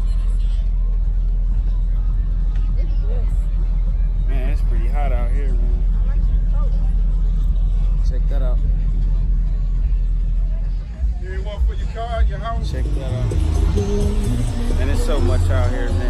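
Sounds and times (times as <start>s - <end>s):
indistinct voices: 0.0s - 16.0s
low crowd rumble: 0.0s - 16.0s.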